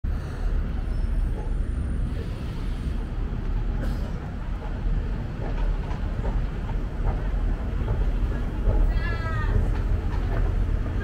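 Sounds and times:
low rumble of city noise: 0.0 - 11.0.

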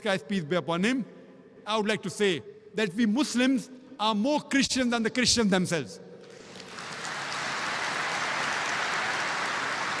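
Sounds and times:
large audience applauding: 6.3 - 10.0.

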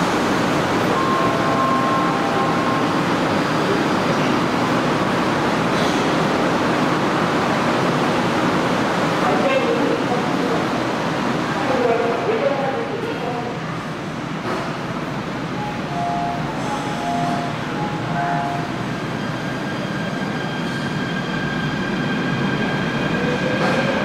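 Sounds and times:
subway train hum: 0.0 - 24.0
brief tones: 0.9 - 2.9
train doors sliding shut: 16.5 - 18.7.

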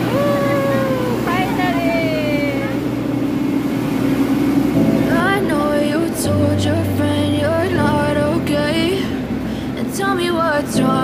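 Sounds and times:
people's voices: 0.0 - 2.8
train humming: 0.0 - 11.0.

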